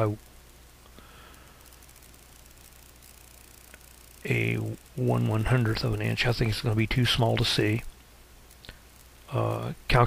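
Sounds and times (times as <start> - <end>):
faint electrical hum and hiss: 0.0 - 10.0.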